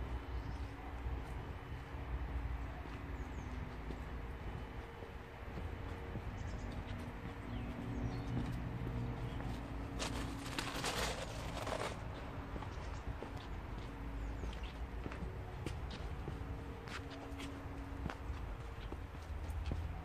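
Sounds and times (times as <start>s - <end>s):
footsteps on driveway: 0.0s - 20.0s.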